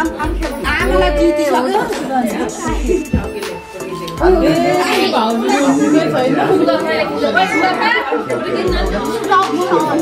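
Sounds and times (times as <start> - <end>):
party chatter: 0.0 - 10.0.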